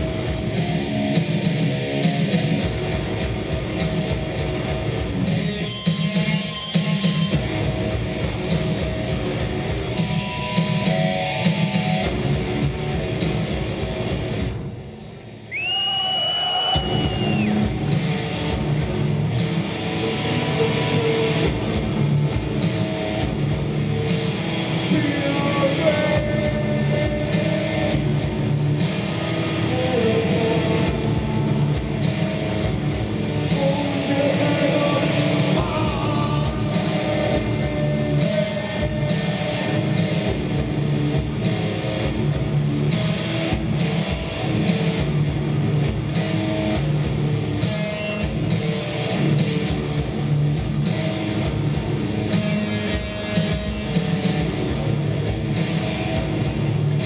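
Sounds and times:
industrial metal band playing: 0.0 - 57.0.

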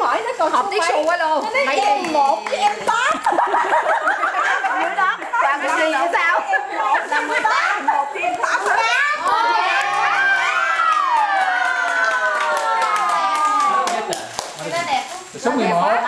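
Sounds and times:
people talking quickly: 0.0 - 10.7.

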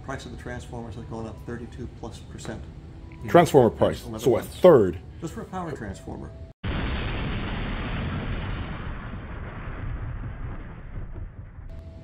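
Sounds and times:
low rumbling blast: 6.6 - 12.0.

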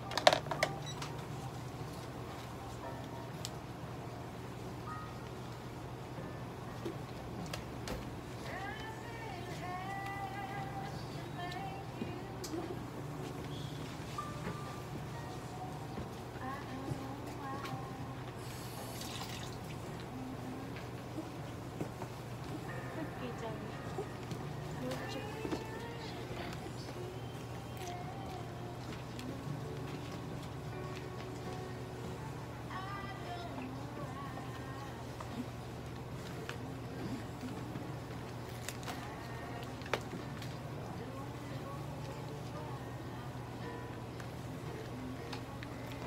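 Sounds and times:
low room hum: 0.0 - 46.0
wet liquid feeding sounds: 18.4 - 20.2.

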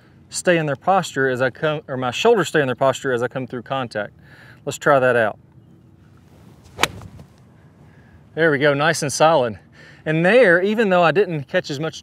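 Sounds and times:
golf iron striking ball: 6.6 - 7.4.

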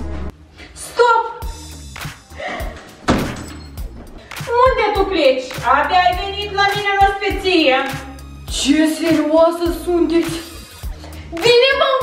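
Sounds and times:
background music: 0.0 - 12.0
door slamming: 2.8 - 4.3.

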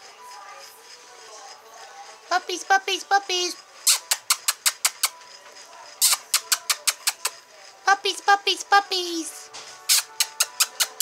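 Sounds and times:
sharp mouth clicks: 3.9 - 5.1, 6.0 - 7.4, 9.9 - 11.0.

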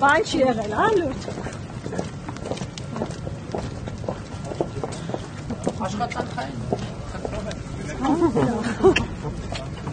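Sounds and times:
footsteps on stone paving: 0.0 - 9.9
voices murmuring: 0.0 - 9.9.

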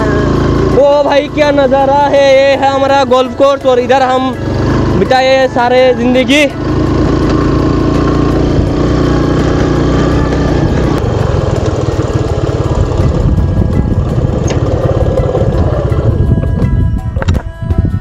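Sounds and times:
motorcycle engine running: 0.0 - 18.0
music playing: 0.0 - 18.0.

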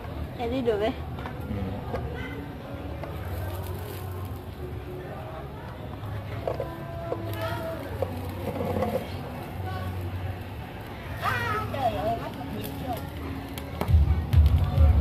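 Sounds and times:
faint background voices: 0.0 - 15.0.

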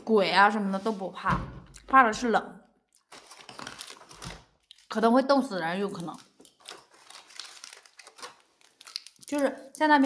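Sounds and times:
rustling handling noise: 5.9 - 9.4.

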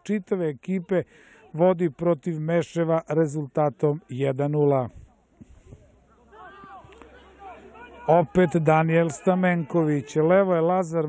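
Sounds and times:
distant footballers shouting: 6.0 - 11.0.

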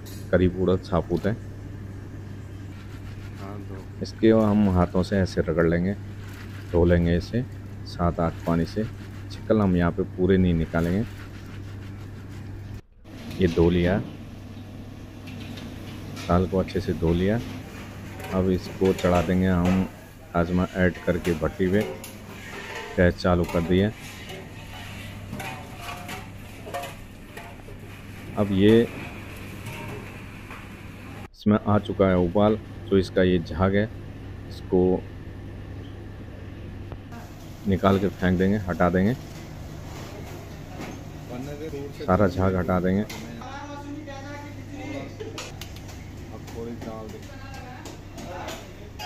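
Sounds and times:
gas burner hum and hiss: 0.0 - 49.0
utensils clinking: 15.2 - 31.3.

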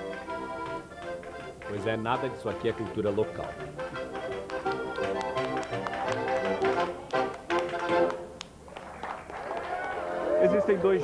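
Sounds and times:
accordion and upright bass folk music: 0.0 - 8.4
people clapping along: 0.4 - 11.0.

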